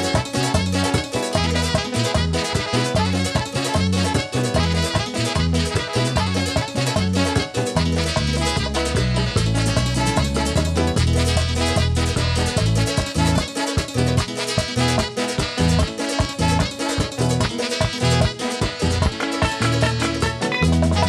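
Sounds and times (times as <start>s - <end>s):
keyboard: 0.0s - 21.0s
live latin band playing: 0.0s - 21.0s
pulsing bass line: 0.0s - 21.0s
strummed acoustic guitar: 0.0s - 21.0s.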